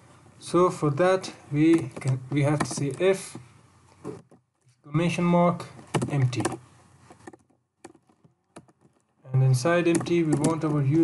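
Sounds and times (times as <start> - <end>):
faint keyboard key presses: 9.8 - 10.8.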